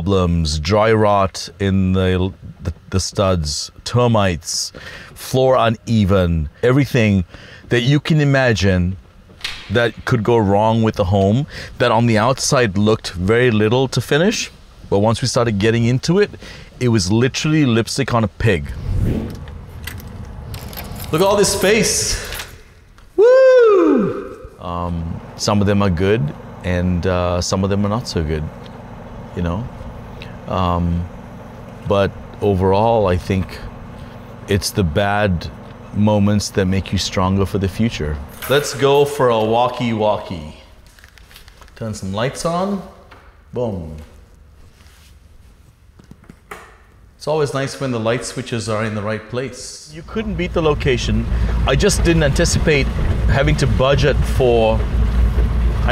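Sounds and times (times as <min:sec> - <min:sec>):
low room hum: 0:00.0 - 0:55.9
keys jangling: 0:19.8 - 0:22.7.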